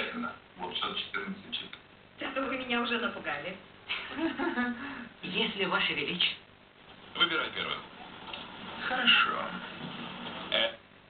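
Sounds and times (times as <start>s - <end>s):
television voice: 0.0s - 10.9s.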